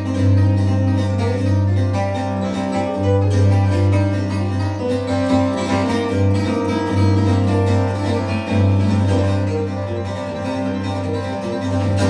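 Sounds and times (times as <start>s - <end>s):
fingerstyle acoustic guitar: 0.0s - 12.0s.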